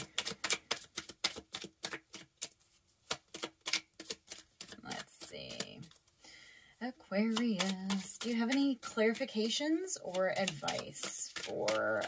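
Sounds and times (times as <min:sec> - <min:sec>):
cards being shuffled: 0:00.0 - 0:06.2, 0:07.1 - 0:12.0.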